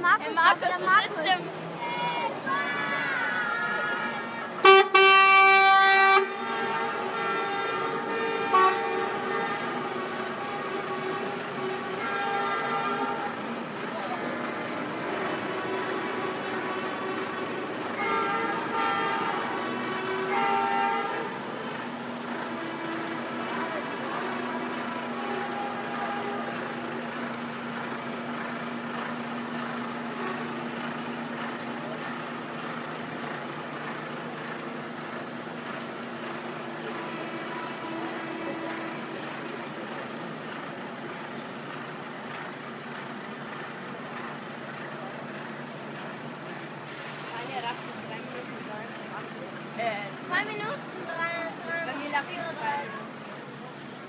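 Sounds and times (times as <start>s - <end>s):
crowd chatter: 0.0s - 54.0s
idling truck engines: 0.0s - 54.0s
lorry horns honking: 1.8s - 41.2s.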